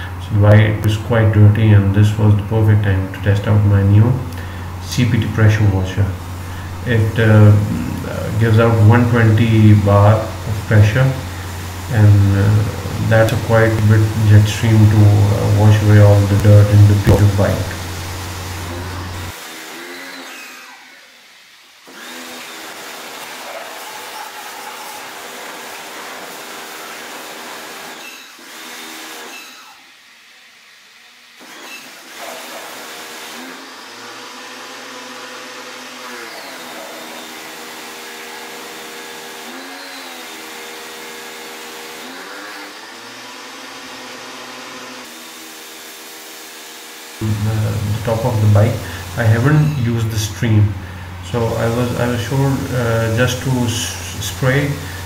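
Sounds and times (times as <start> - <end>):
pressure washer motor whine: 0.0 - 19.9, 21.9 - 28.1, 32.3 - 55.0
water jet hissing: 3.1 - 19.4, 22.6 - 28.0, 45.0 - 55.0.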